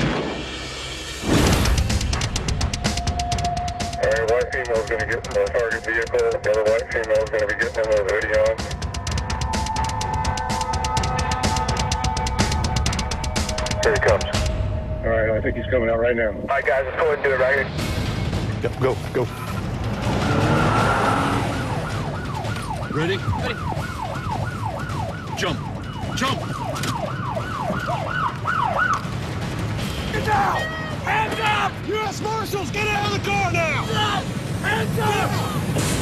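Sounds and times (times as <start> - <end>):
car engine and tyre noise: 0.0 - 30.1, 31.0 - 36.0
tense music with rapid drums: 0.0 - 36.0
siren sweeping down: 7.2 - 16.2, 20.2 - 29.1.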